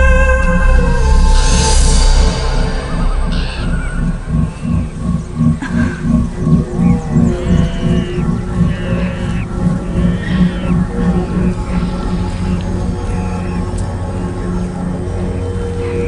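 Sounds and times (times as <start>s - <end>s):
low pulsing beat: 0.0s - 16.0s
suspenseful film score: 0.0s - 16.0s
high animal-like calls: 3.3s - 16.0s.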